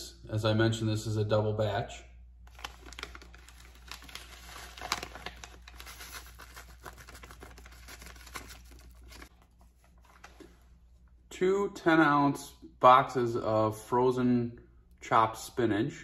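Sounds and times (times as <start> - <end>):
paper packet crinkling: 2.4 - 10.5.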